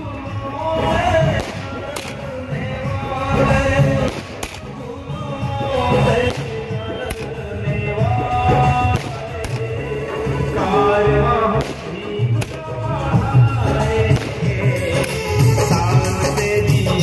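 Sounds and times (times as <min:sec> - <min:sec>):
music with singing: 0:00.0 - 0:17.0
fireworks bursting: 0:00.8 - 0:04.9, 0:05.6 - 0:10.2, 0:11.5 - 0:15.8.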